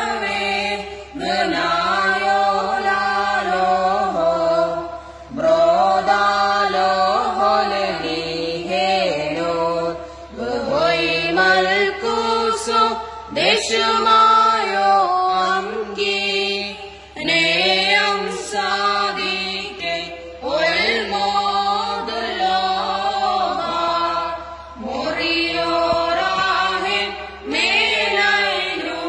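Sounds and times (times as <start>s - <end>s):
choir singing a chant: 0.0s - 29.0s.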